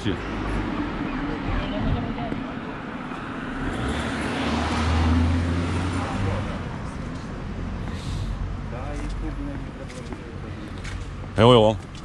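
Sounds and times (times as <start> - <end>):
car passing: 0.0 - 11.8.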